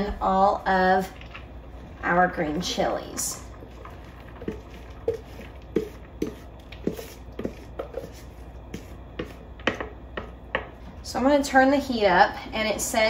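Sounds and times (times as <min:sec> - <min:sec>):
spatula knocking and scraping bowl: 0:04.4 - 0:10.8.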